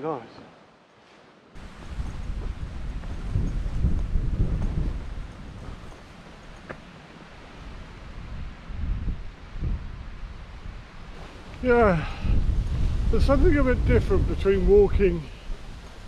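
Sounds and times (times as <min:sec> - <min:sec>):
wind buffeting microphone: 0:01.6 - 0:16.0.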